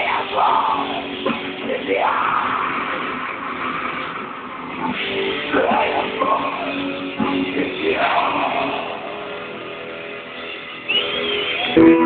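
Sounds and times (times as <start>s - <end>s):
loud burst of guitar playing: 0.0s - 12.0s
electric guitar notes ringing: 8.6s - 12.0s.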